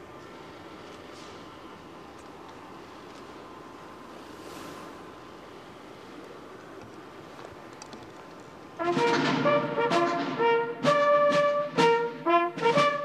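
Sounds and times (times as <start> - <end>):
open-air background hiss: 0.0 - 13.0
brass band playing: 8.8 - 13.0.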